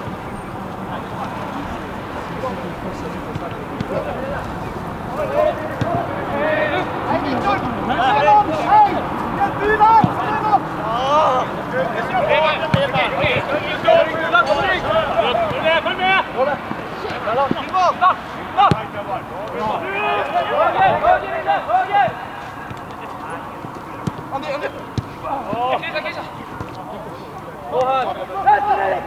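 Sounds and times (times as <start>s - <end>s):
players shouting and calling: 0.0s - 29.0s.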